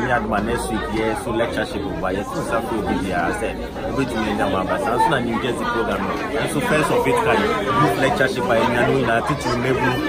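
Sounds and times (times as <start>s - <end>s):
chatter of people in a large room: 0.0s - 10.0s
man talking close up: 0.0s - 10.0s.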